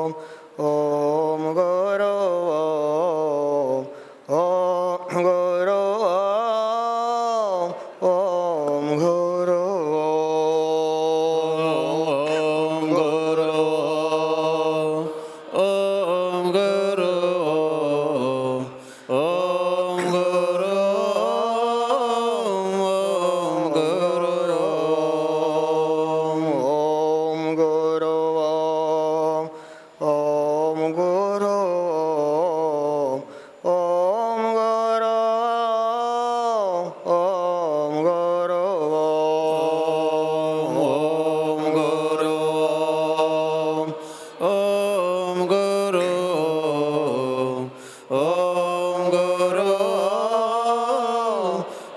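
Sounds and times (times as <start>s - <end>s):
man chanting into a microphone: 0.0s - 51.9s.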